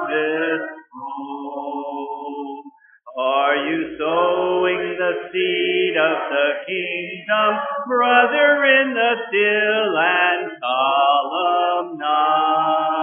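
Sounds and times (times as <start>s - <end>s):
congregation singing a hymn: 0.0s - 13.0s.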